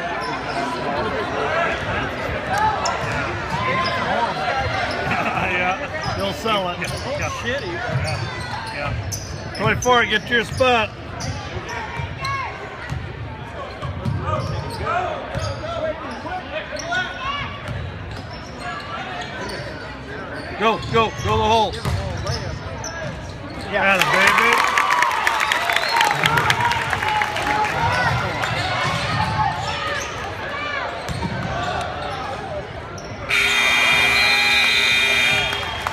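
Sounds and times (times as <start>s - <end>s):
crowd chatter: 0.0s - 35.9s
sneakers squeaking: 6.0s - 23.8s, 30.8s - 35.9s
scoreboard buzzer horn: 33.3s - 35.9s.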